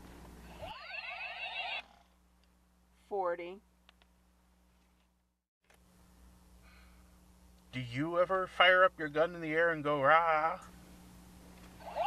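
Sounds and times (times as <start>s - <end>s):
toy ray-gun sweeping tones: 0.5s - 1.9s, 11.8s - 12.0s
faint low hum: 1.8s - 12.0s.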